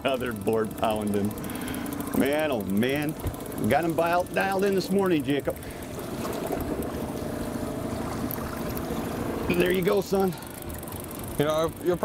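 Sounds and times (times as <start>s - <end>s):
boat motor droning: 0.0s - 12.0s
water noise: 0.0s - 12.0s
wind: 0.0s - 12.0s.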